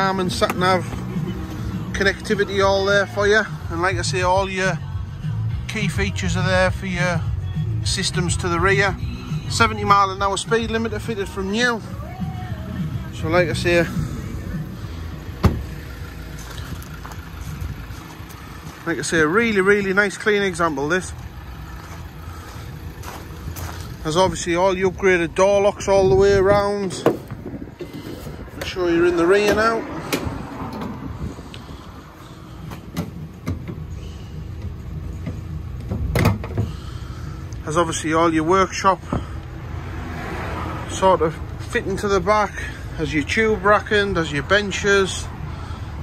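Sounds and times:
low background rumble: 0:00.0 - 0:39.8
van door shutting thud: 0:15.3 - 0:15.9, 0:32.7 - 0:33.9, 0:35.3 - 0:36.8.

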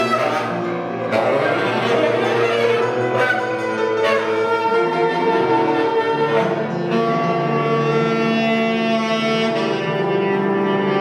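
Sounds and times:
grand piano: 0:00.0 - 0:11.0
tenor saxophone: 0:00.0 - 0:11.0.

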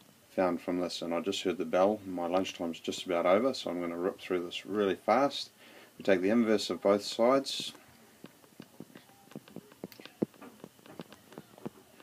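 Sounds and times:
stylus tapping on tablet screen: 0:07.6 - 0:12.0.

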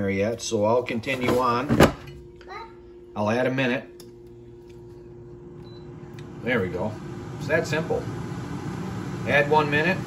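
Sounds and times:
air fryer fan humming: 0:00.0 - 0:10.0.

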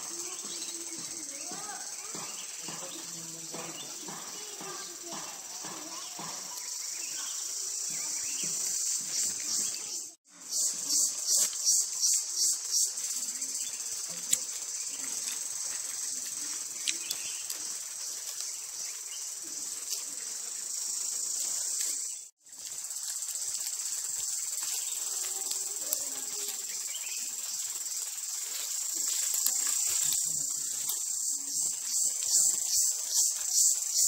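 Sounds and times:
high-pitched insect chorus: 0:00.0 - 0:34.0.

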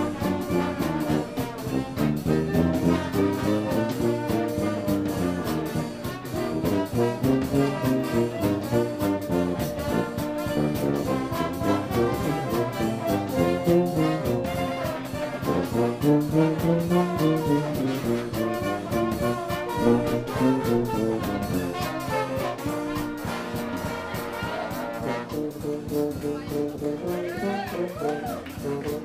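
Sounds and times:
brass horns playing jazz: 0:00.0 - 0:29.0
steady drum beat: 0:00.0 - 0:29.0.

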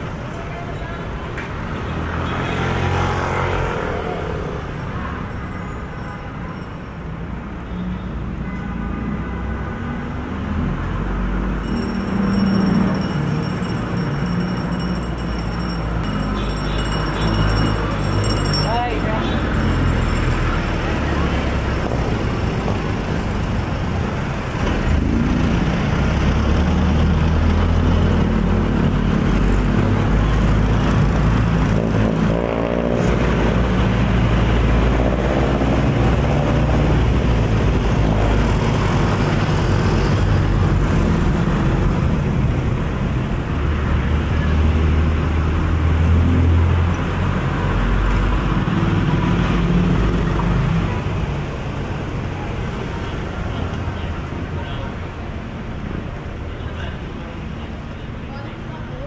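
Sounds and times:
street traffic engines: 0:00.0 - 0:59.0.

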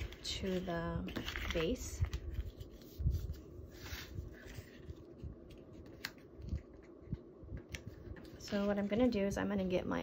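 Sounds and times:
paper rustling: 0:00.0 - 0:06.9, 0:07.7 - 0:09.3.

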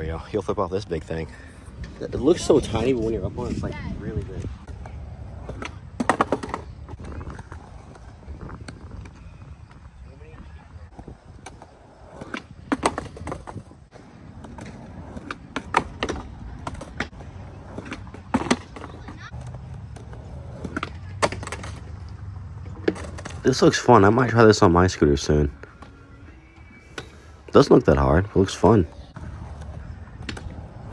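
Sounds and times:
skateboard wheels rolling on concrete: 0:00.0 - 0:30.9
skateboard clacking on ground: 0:04.2 - 0:09.8, 0:10.8 - 0:24.4, 0:27.9 - 0:30.9.

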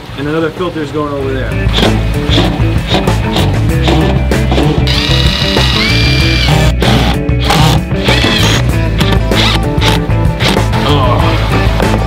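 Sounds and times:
loud background music: 0:01.6 - 0:12.0
impact driver driving screws: 0:04.9 - 0:10.6.

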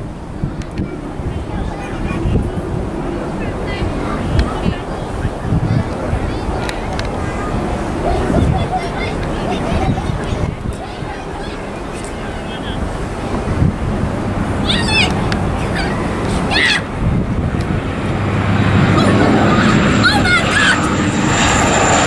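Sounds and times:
turboprop airliner drone: 0:00.0 - 0:22.0
wind buffeting microphone: 0:00.0 - 0:22.0.

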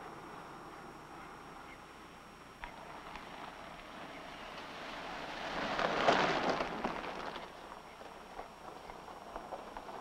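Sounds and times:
car tyres crunching over gravel: 0:02.6 - 0:10.0.

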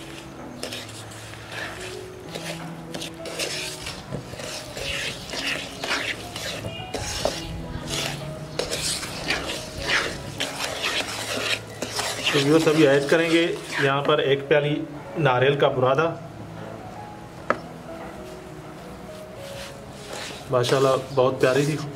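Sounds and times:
wooden spatula scraping a pan: 0:00.0 - 0:14.3, 0:19.4 - 0:21.9.

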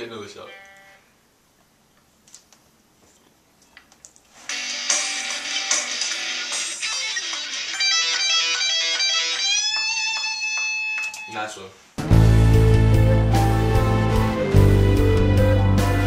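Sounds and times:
electric guitar picked notes: 0:04.7 - 0:11.4, 0:12.0 - 0:16.0.

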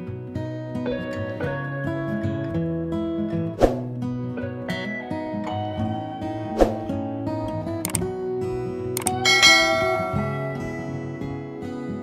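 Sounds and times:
soft acoustic guitar music: 0:00.0 - 0:12.0
mouse click sound effect: 0:07.8 - 0:08.1, 0:09.0 - 0:09.2
bright bell chime: 0:09.0 - 0:11.7.

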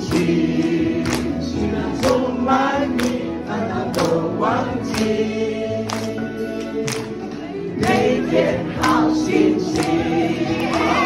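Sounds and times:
group singing worship song: 0:00.0 - 0:11.0.

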